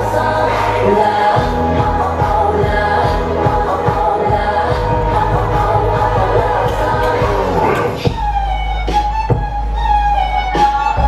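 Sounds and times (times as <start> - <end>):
women singing: 0.0 - 8.1
dance music backing track: 0.0 - 11.0
pulsing kick drum beat: 1.4 - 8.5
held bass tone: 1.4 - 10.3.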